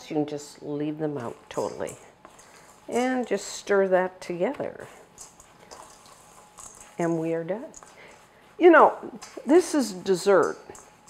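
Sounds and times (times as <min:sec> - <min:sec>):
spatula scraping in a bowl: 0:04.8 - 0:11.0.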